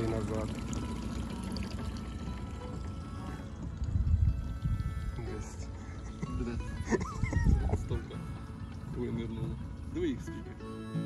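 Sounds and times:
water running and splashing: 0.0s - 5.4s
music playing: 0.0s - 11.0s.

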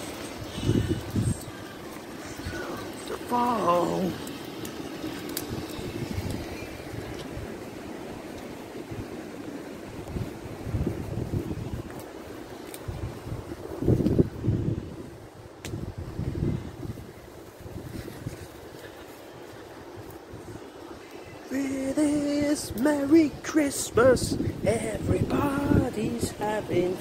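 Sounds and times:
low rumbling wind: 0.0s - 27.0s
low wind buffets: 0.0s - 27.0s
faint clicks: 4.2s - 6.4s.

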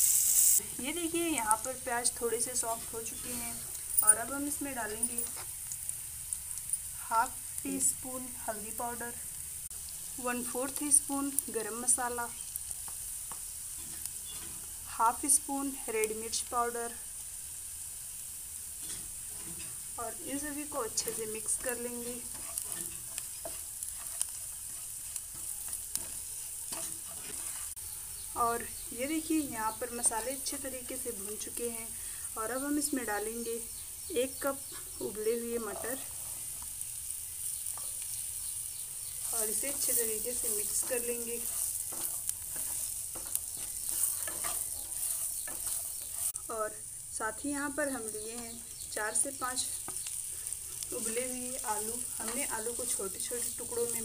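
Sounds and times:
onions sizzling in hot oil: 0.0s - 54.0s
wooden spatula stirring: 21.0s - 27.8s, 39.1s - 46.4s.

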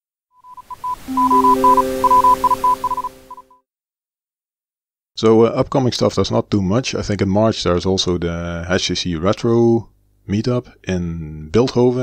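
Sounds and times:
morse-like beeping tone: 0.4s - 3.6s.

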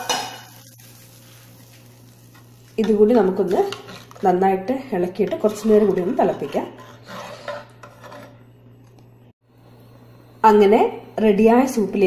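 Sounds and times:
scraping and rubbing: 5.2s - 8.5s.

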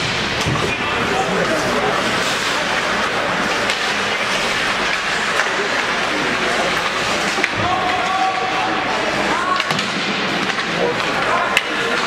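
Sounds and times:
hockey sticks and puck clacking: 0.0s - 12.0s
arena crowd noise with shouts: 0.7s - 12.0s.

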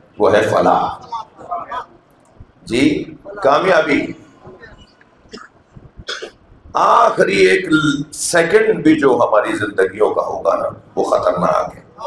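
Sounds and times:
man speaking: 0.1s - 1.9s, 2.6s - 4.3s, 6.8s - 12.0s
man clearing his throat: 5.3s - 6.4s.

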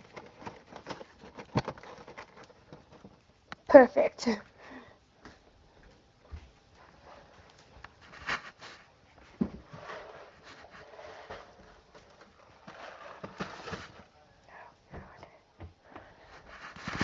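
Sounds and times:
cardboard boxes rustling and scraping: 0.0s - 3.2s, 6.8s - 14.3s, 16.3s - 17.0s.

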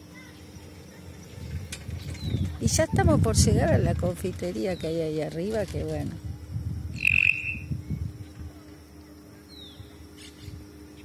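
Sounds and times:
wind on microphone: 1.2s - 8.7s
bird whistling: 7.0s - 7.8s.

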